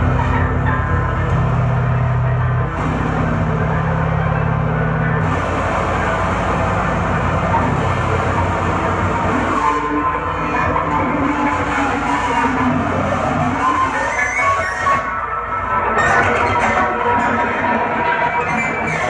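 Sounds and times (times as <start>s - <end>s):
noise rock band playing: 0.0s - 19.0s.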